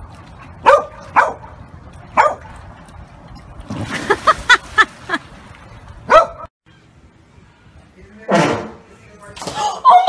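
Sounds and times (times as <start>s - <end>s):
water splashing: 0.0s - 6.4s
large dog barking: 0.6s - 1.6s, 6.1s - 6.5s.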